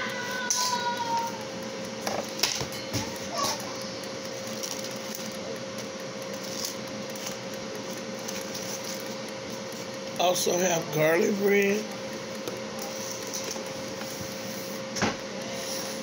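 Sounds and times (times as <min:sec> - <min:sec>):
appliance hum with whine: 0:00.0 - 0:16.0.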